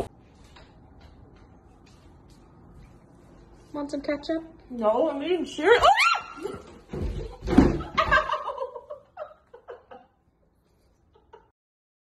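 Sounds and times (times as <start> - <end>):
thump and scuffle on wooden floor: 6.6 - 8.3.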